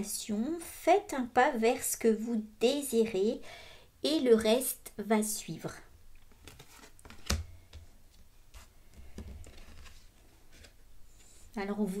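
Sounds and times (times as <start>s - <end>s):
cards rustling: 6.2s - 7.8s, 8.6s - 11.4s.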